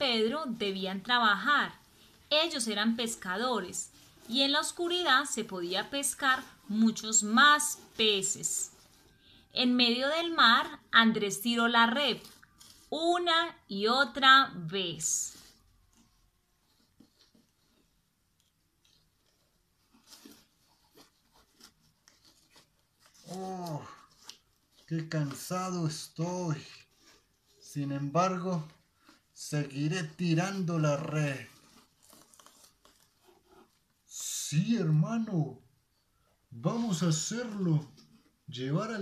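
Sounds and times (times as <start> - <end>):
crinkling and rustling of cardboard: 0.0 - 13.3, 14.1 - 34.6, 36.2 - 39.0
cardboard puppet rustling and tapping: 15.4 - 23.4.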